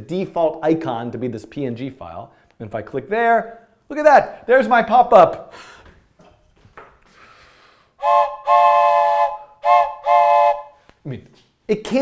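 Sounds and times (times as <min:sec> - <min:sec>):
toy train whistle blasts: 0:08.0 - 0:10.8.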